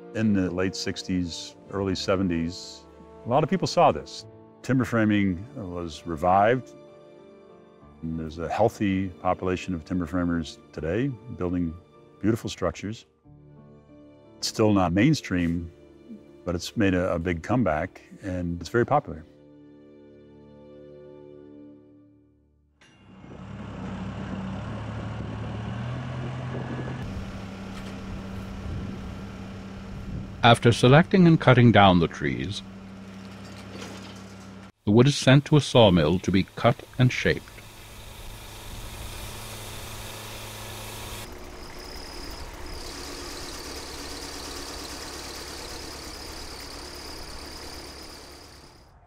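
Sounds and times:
band sawmill cutting timber: 22.8s - 48.9s
diesel engine running: 23.0s - 49.0s
thin high whine: 35.2s - 49.0s.

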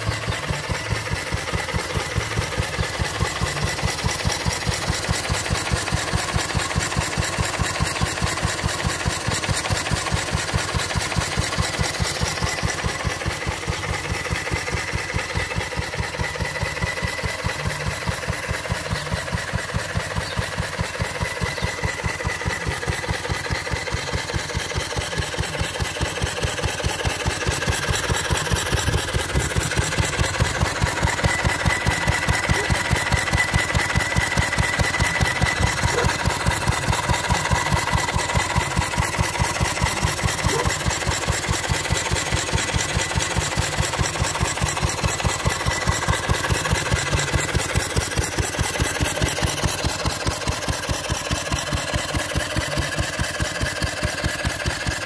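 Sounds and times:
stationary engine running: 0.0s - 55.0s.

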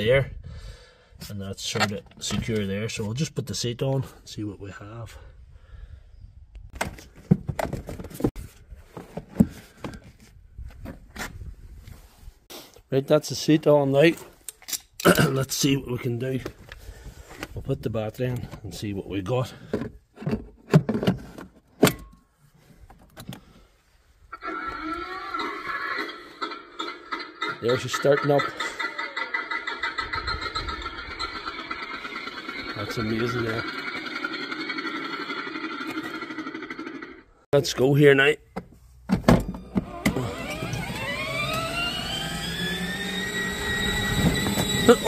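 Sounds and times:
electric motors whining: 39.6s - 45.0s.

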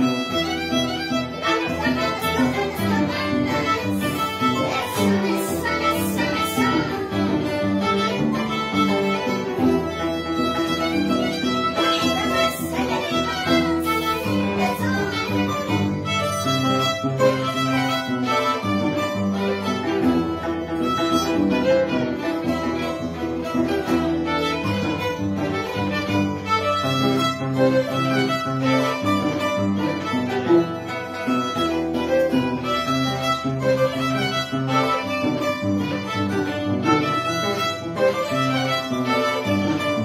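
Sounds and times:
violin melody: 0.0s - 40.0s.

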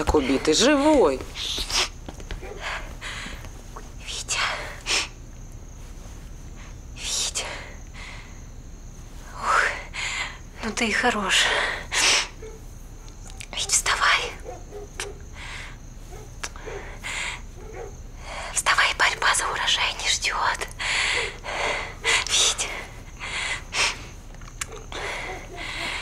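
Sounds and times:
woman whispering: 3.7s - 5.1s, 6.9s - 7.9s, 9.2s - 11.9s, 13.4s - 14.4s, 18.2s - 23.0s.

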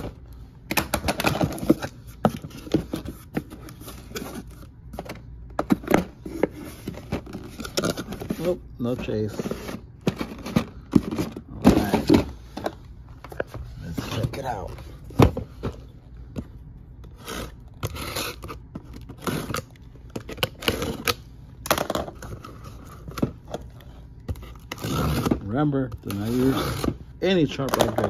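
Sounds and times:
cardboard and plastic packs handled: 0.0s - 28.0s
box cutter cutting packing tape: 17.1s - 21.8s, 24.3s - 25.4s, 26.1s - 27.0s.

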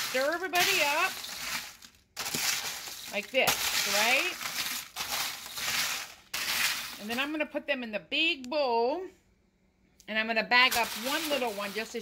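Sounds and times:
snack mix rustling in foil pan: 0.0s - 7.4s, 10.6s - 12.0s.

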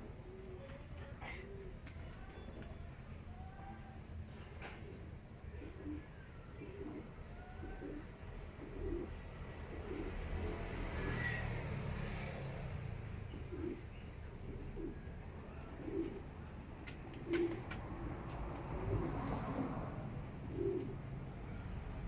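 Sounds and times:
dove cooing: 0.0s - 22.0s.

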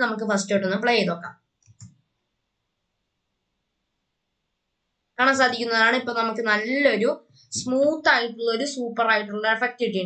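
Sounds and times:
person speaking: 0.0s - 1.9s, 5.2s - 10.0s.

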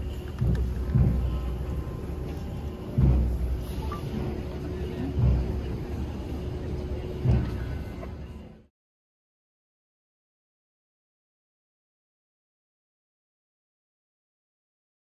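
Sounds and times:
outdoor crowd noise: 0.0s - 8.7s.

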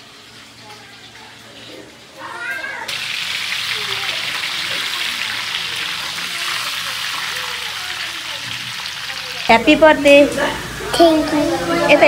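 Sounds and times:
chicken sizzling in a wok: 0.0s - 12.0s.

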